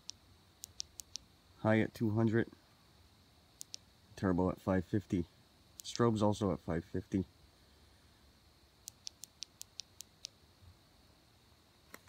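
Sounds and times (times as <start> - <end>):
small sharp clicks: 0.0 - 1.3, 3.6 - 3.9, 5.8 - 6.0, 8.8 - 10.4.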